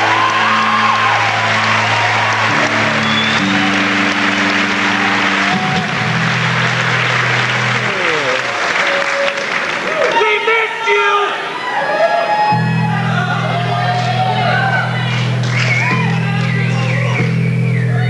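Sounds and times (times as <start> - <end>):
electric guitars and bass: 0.0 - 9.3, 12.5 - 18.0
crowd applauding and cheering: 0.0 - 18.0.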